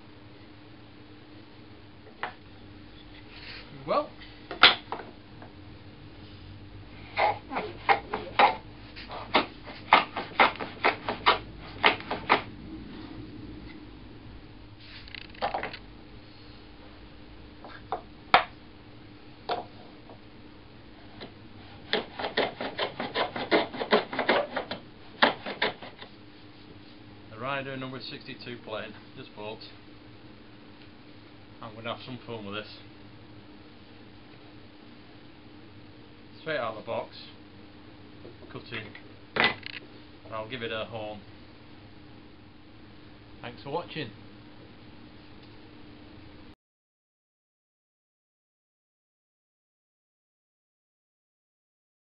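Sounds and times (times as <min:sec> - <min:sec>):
plane scraping along wood: 0:21.2 - 0:26.1.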